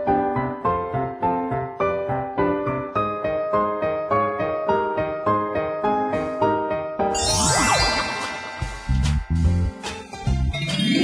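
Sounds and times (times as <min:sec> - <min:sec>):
shimmering tinkling chime: 0:07.2 - 0:09.8
background music with low beat: 0:08.6 - 0:10.6.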